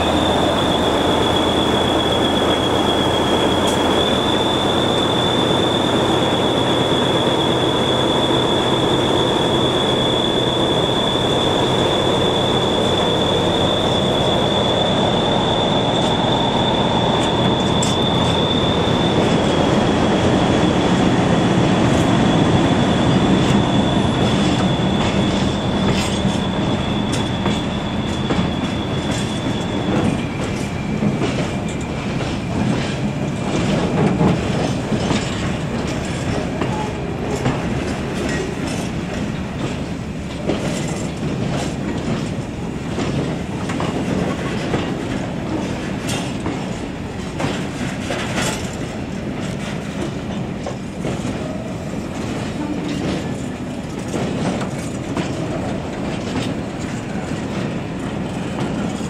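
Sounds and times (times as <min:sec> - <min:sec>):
train wheels squealing on rails: 0:00.0 - 0:59.0.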